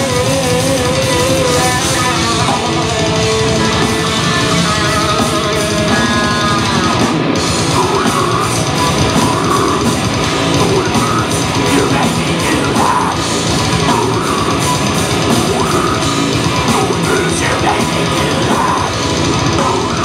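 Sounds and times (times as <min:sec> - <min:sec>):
distorted electric guitars: 0:00.0 - 0:20.0
drums: 0:00.0 - 0:20.0.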